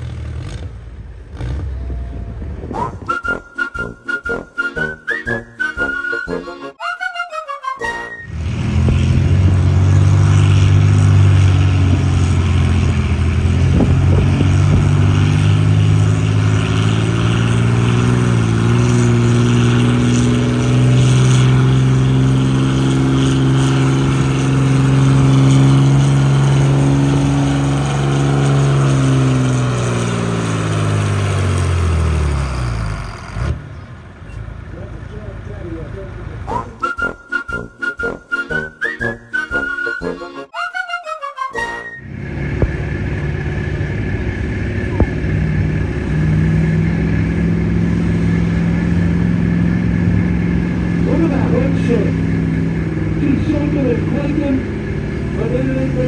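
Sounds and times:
whistling tones: 0:02.7 - 0:08.3, 0:36.5 - 0:42.1
engine running hard under load: 0:08.2 - 0:36.8, 0:42.0 - 0:56.0.

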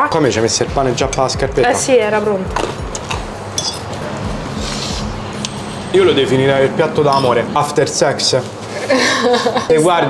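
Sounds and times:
fork clinking on plate: 0:03.6 - 0:03.9.

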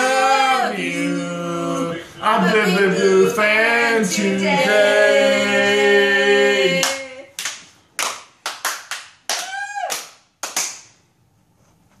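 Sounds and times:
people singing: 0:00.0 - 0:07.4
scattered handclaps: 0:06.8 - 0:10.9.

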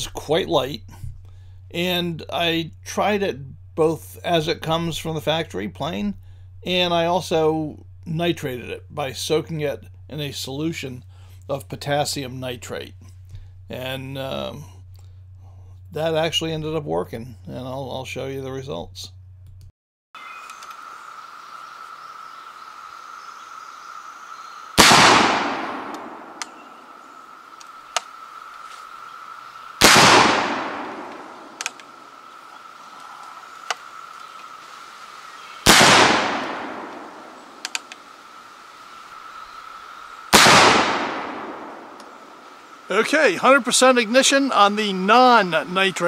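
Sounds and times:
small clicks: 0:20.4 - 0:20.8, 0:25.9 - 0:26.6, 0:31.1 - 0:31.9, 0:33.0 - 0:34.5, 0:37.6 - 0:38.0
rifle shots with echoing tail: 0:24.8 - 0:26.9, 0:29.8 - 0:32.1, 0:35.6 - 0:37.6, 0:40.3 - 0:42.4.

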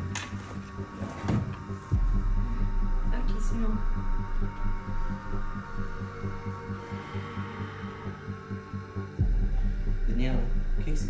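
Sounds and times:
suspense music with pulsing beat: 0:00.0 - 0:11.0.

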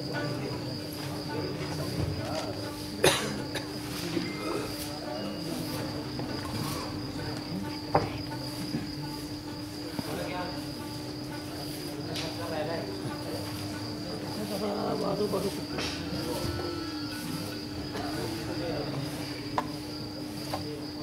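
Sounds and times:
crickets chirping: 0:00.0 - 0:21.0
murmur of voices: 0:00.0 - 0:21.0.

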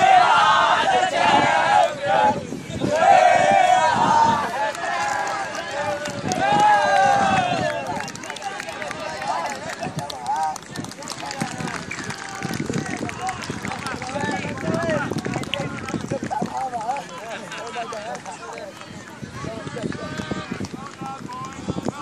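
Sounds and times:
group shouting and cheering: 0:00.0 - 0:10.7.

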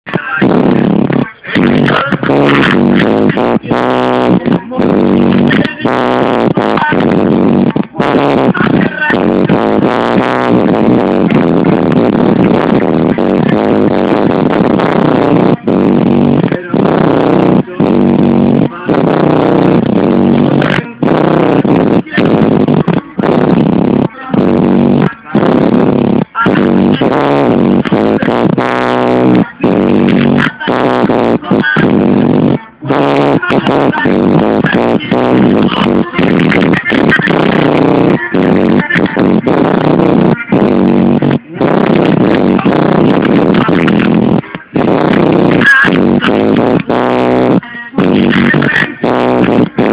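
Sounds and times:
loud music with vocals: 0:00.0 - 0:49.9.

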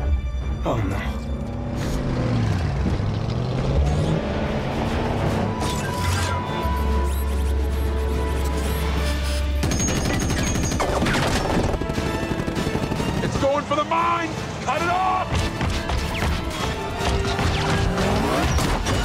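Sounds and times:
dramatic film score: 0:00.0 - 0:19.0
gunfire: 0:09.6 - 0:13.6.

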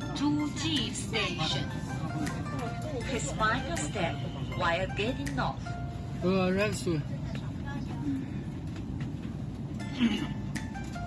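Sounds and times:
train carriage hum: 0:00.0 - 0:11.0.

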